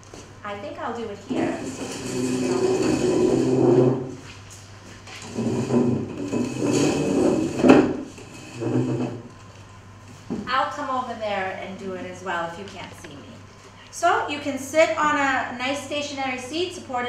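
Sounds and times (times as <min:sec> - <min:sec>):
metal chairs scraping on floor: 0:01.3 - 0:09.4
chair knocking down: 0:05.2 - 0:09.3.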